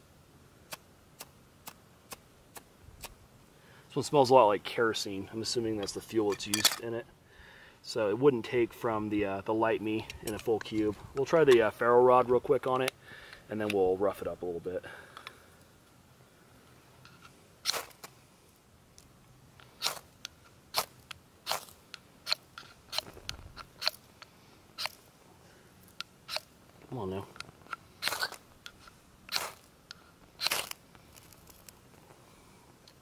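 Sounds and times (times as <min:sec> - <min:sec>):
striker scraping ferrocerium rod: 0:24.8 - 0:25.0, 0:26.3 - 0:26.5, 0:28.0 - 0:31.7.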